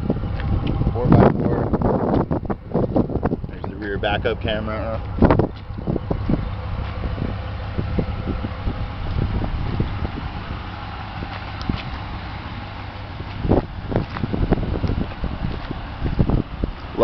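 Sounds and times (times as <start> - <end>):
pickup engine idling: 0.0 - 17.0
wind rumble on microphone: 0.0 - 17.0
light footsteps: 5.0 - 7.4, 9.0 - 17.0.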